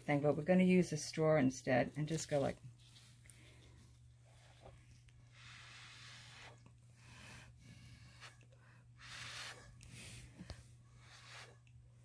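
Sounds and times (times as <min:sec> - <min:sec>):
breath puffs through straw: 0:05.3 - 0:11.6.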